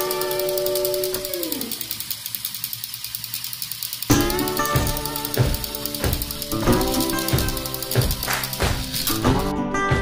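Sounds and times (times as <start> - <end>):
toy train clicking on track: 0.0 - 9.5.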